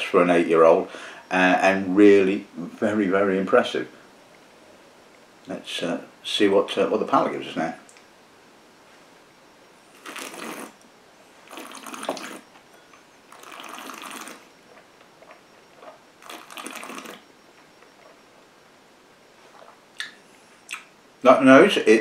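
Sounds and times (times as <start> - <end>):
whisky slurped and swished: 9.9 - 10.8, 11.4 - 12.5, 13.3 - 14.5, 15.8 - 17.3.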